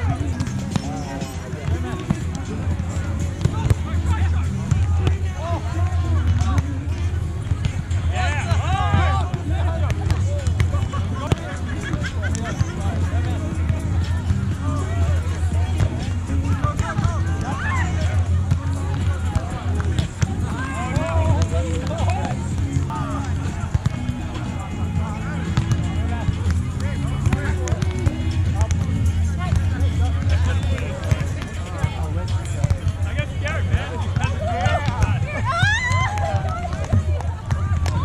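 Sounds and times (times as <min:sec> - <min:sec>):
players calling out: 0:00.0 - 0:38.0.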